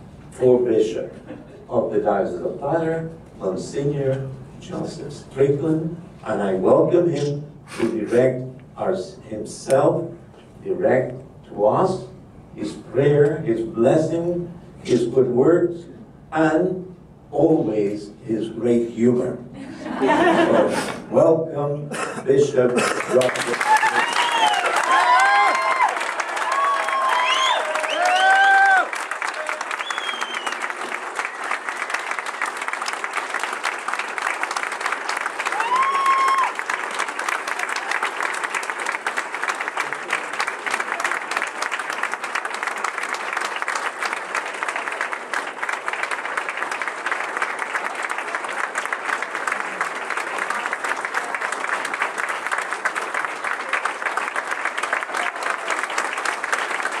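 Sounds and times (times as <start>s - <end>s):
audience applauding: 22.6s - 57.0s.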